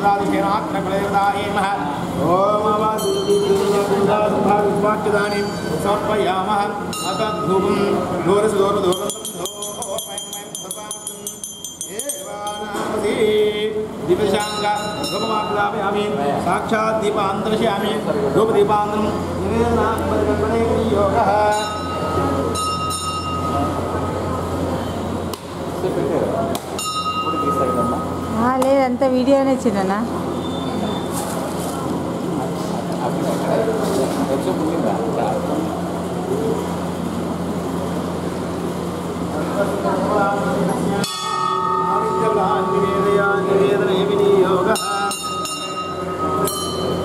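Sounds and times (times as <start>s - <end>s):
air cooler fan whirring hum: 0.0s - 47.0s
high ringing tone: 2.7s - 4.3s, 5.1s - 8.0s, 8.6s - 16.2s, 20.8s - 25.1s, 26.8s - 28.6s, 30.3s - 31.2s, 40.1s - 47.0s.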